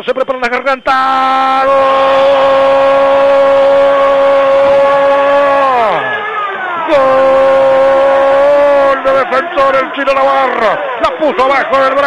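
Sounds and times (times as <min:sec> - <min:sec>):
commentator's long goal cry: 0:06.9 - 0:11.0.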